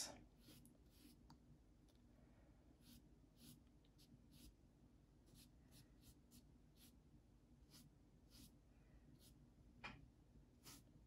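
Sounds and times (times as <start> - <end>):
paintbrush strokes on paper: 0.2 - 1.3, 2.7 - 4.6, 5.2 - 9.5, 10.6 - 11.0.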